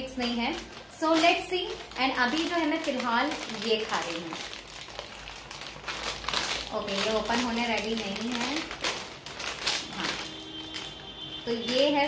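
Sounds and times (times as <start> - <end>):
plastic snack packet crinkling: 0.0 - 12.0.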